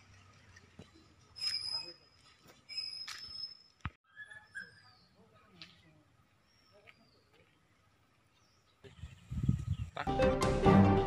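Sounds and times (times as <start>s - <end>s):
bird chirps: 1.3s - 5.4s, 6.4s - 7.4s.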